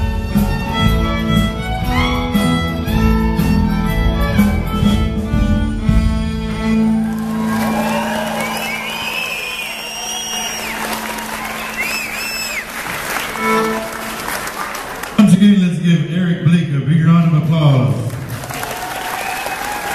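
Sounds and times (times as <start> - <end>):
fiddle tune with bass: 0.0 - 18.0
audience applause: 6.7 - 15.5, 18.0 - 19.9
cheering and whistles: 7.0 - 13.4, 18.5 - 19.9.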